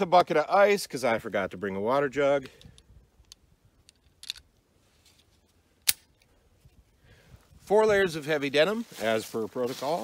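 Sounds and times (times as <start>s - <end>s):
sharp click: 5.8s - 6.1s.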